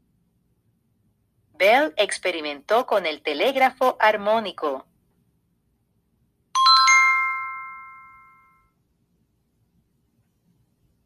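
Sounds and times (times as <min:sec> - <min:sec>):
electronic chime ringing: 0:06.6 - 0:08.7.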